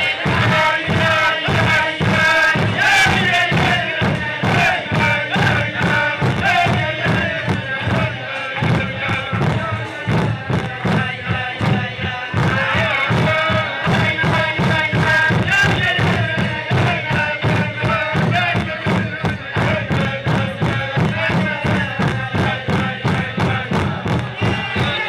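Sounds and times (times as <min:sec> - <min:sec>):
men singing wordless melody: 0:00.0 - 0:25.0
rhythmic thumps: 0:00.0 - 0:25.0.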